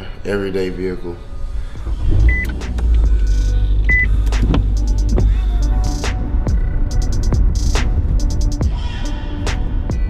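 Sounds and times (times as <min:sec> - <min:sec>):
car engine running: 0:01.4 - 0:08.6.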